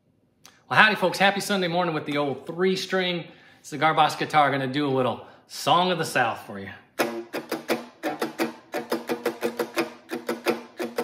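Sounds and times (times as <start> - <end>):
guitar plucked notes: 7.0 - 11.0.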